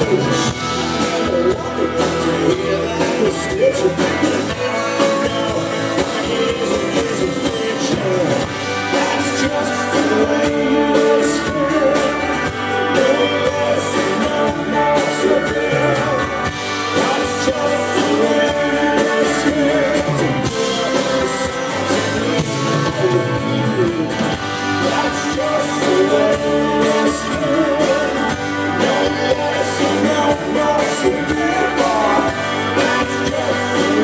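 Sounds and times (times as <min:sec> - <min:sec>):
live rock band playing: 0:00.0 - 0:34.0.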